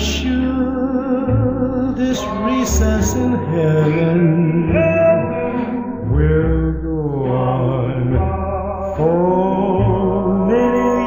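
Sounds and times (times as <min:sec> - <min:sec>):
deep bass note: 0:00.0 - 0:11.0.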